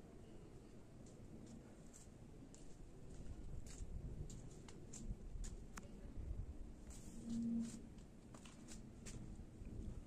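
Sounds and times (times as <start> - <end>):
footsteps on paving: 1.1 - 5.7.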